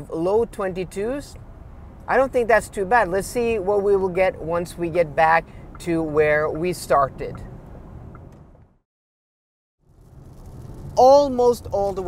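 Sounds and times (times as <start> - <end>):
road and tyre noise in car cabin: 0.0 - 8.8, 9.8 - 12.0.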